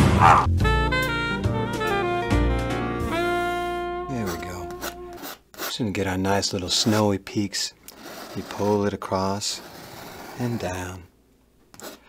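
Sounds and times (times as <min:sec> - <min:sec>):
jazzy saxophone tune: 0:00.0 - 0:05.4
man speaking: 0:04.1 - 0:04.9, 0:05.7 - 0:09.7, 0:10.4 - 0:11.1
raspy scraping: 0:04.1 - 0:11.0.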